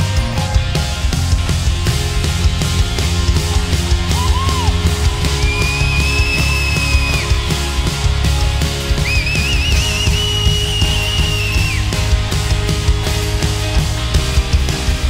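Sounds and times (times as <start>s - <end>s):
bass: 0.0s - 15.0s
steady drum beat: 0.0s - 15.0s.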